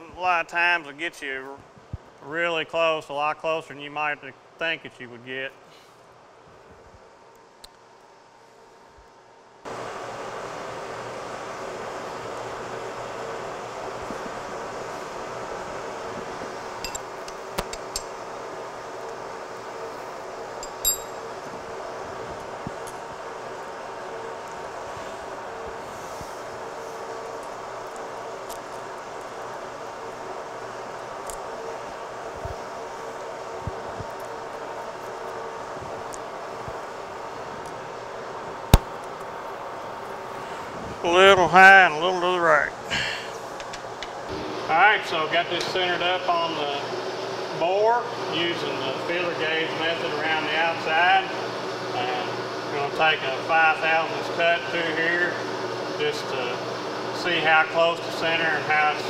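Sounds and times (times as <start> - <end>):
machine hum: 7.0 - 59.0
sharp metallic clinks: 20.6 - 21.2.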